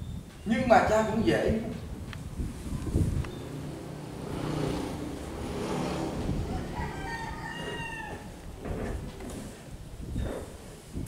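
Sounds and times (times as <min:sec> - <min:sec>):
rooster crowing: 0:05.8 - 0:08.6.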